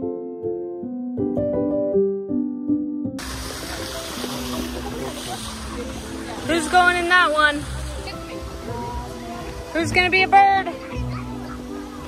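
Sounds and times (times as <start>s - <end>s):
faint background music: 3.2s - 12.0s.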